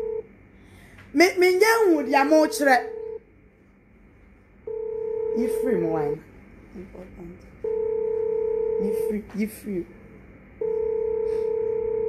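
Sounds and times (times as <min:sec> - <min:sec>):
telephone line tone: 0:00.0 - 0:00.3, 0:01.9 - 0:03.2, 0:04.7 - 0:06.2, 0:07.6 - 0:09.2, 0:10.6 - 0:12.0.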